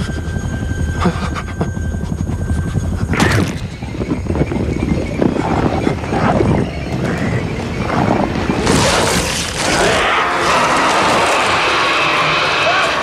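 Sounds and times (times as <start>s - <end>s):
helicopter cabin drone: 0.0s - 13.0s
tense music score: 0.0s - 13.0s.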